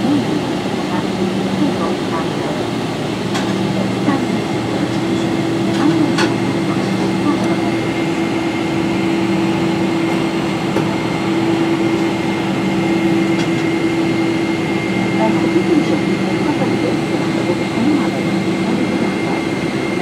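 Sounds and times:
airplane cabin rushing noise: 0:00.0 - 0:20.0
thin high steady whine: 0:00.0 - 0:20.0.

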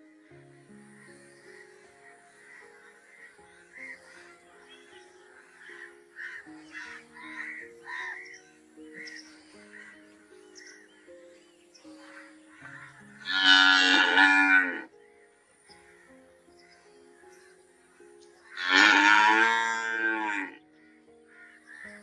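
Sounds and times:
soft background music: 0:00.0 - 0:22.0
cow mooing: 0:13.2 - 0:14.9, 0:18.6 - 0:20.6.

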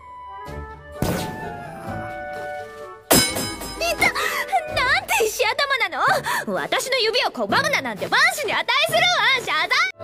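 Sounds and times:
soft background music: 0:00.0 - 0:10.0
sharp knock with ringing tail: 0:03.1 - 0:03.8.

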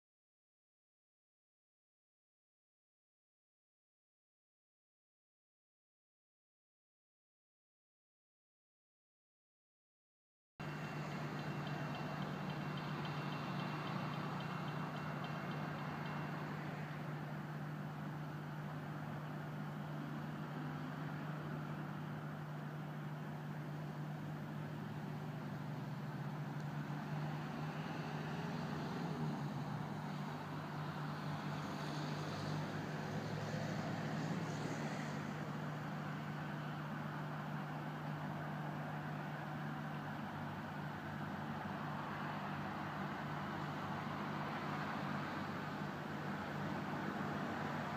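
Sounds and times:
diesel railcar engine hum: 0:10.6 - 0:47.9.

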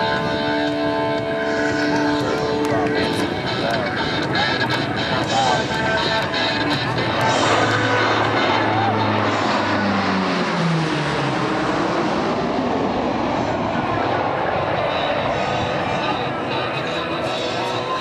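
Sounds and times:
propeller aircraft passing: 0:00.0 - 0:18.0.

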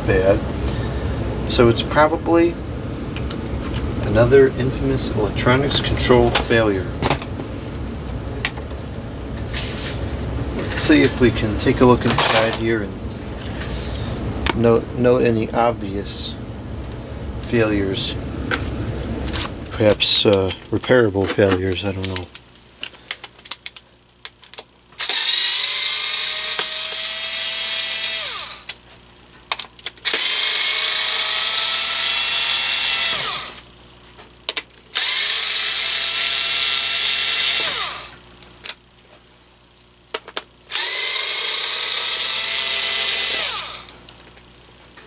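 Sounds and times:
electric screwdriver motor whine: 0:25.0 - 0:28.7, 0:30.0 - 0:33.7, 0:35.0 - 0:38.2, 0:40.7 - 0:44.0.

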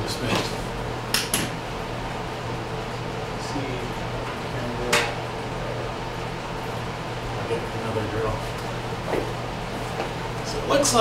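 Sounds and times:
ventilation hum: 0:00.0 - 0:11.0.

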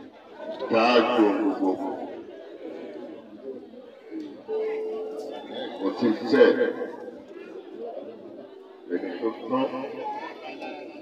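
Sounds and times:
crowd chatter: 0:00.0 - 0:11.0
man speaking loudly: 0:00.7 - 0:01.8, 0:05.8 - 0:06.8.

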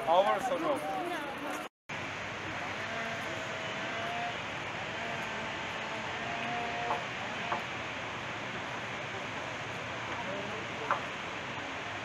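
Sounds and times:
distant waterfall roar: 0:01.9 - 0:12.0
faint voices: 0:08.6 - 0:12.0.

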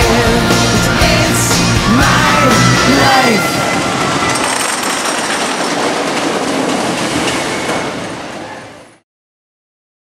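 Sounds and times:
roller coaster rumbling and clattering: 0:00.0 - 0:09.0.

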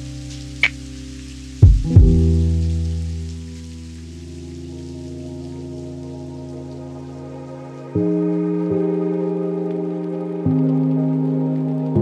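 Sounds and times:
rain: 0:00.0 - 0:12.0
soft keyboard chord with deep bass: 0:00.0 - 0:12.0.

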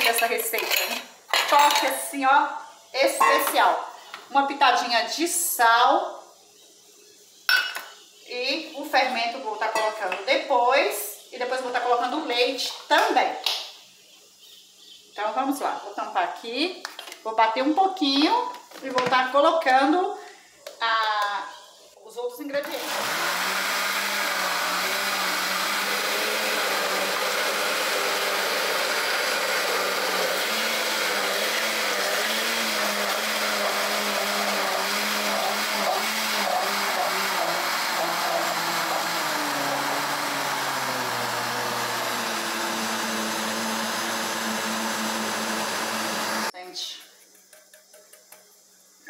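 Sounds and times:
blender running: 0:22.6 - 0:46.5.

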